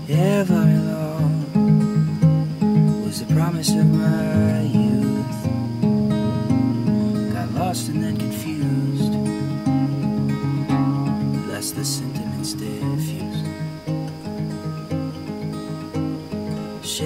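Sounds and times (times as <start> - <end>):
acoustic guitar folk song: 0.0 - 17.0.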